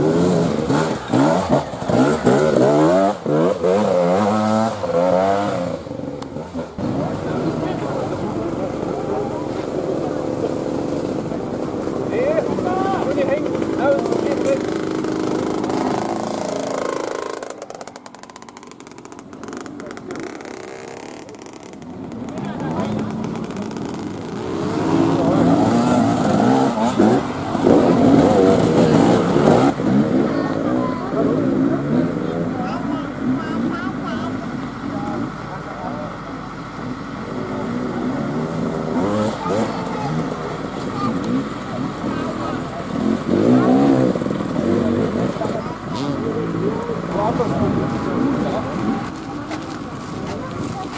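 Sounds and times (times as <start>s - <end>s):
dirt bike engines revving: 0.0s - 50.9s
people's voices: 0.0s - 50.9s.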